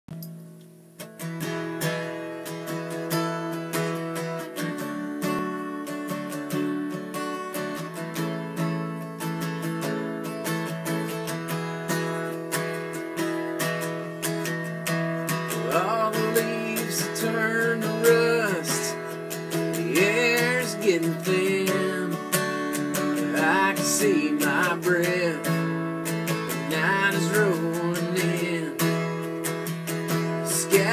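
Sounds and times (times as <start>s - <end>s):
acoustic guitar strumming: 0.1s - 30.9s
bending sliding guitar notes: 0.2s - 30.9s.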